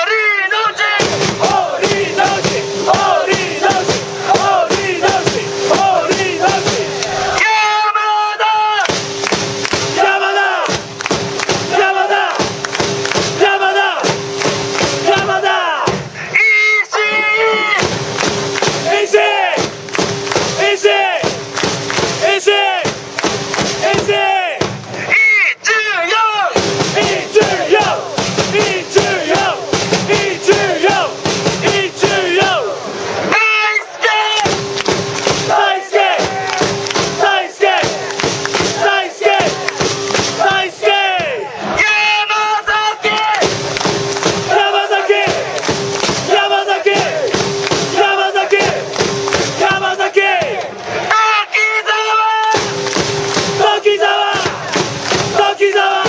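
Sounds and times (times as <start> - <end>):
crowd chanting in unison: 0.6 - 7.6, 9.6 - 16.4, 17.1 - 25.1, 26.4 - 56.0.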